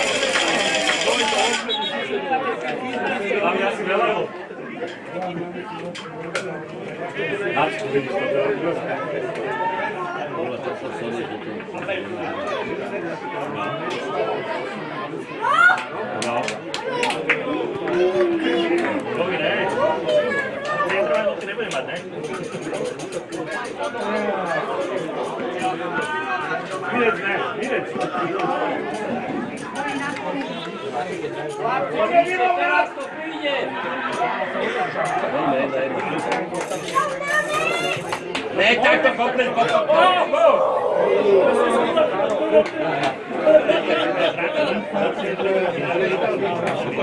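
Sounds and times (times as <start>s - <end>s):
crowd talking and calling out: 0.0s - 47.0s
indistinct chatter of voices: 0.0s - 47.0s
loud shout: 15.4s - 15.9s, 40.0s - 42.3s.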